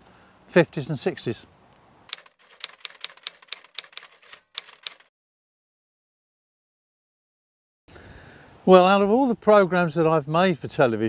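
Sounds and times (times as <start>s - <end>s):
typewriter key clicks: 2.1s - 5.1s.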